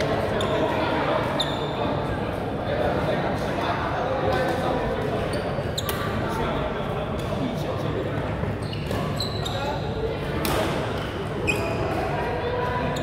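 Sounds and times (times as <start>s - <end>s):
murmur of voices: 0.0s - 13.0s
shoe squeaks on court floor: 0.3s - 1.8s, 5.2s - 6.1s, 8.5s - 10.0s, 11.4s - 12.0s.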